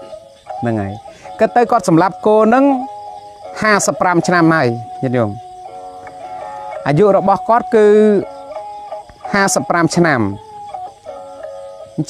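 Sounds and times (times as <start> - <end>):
rooster crowing: 5.4 - 7.2.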